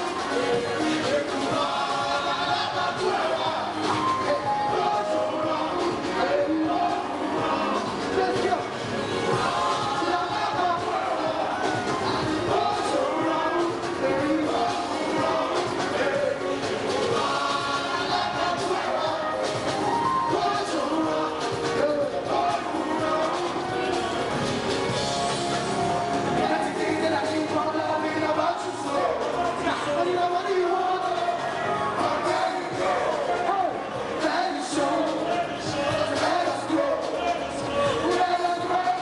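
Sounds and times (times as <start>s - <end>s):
live concert music: 0.0s - 39.0s
people singing: 0.0s - 39.0s.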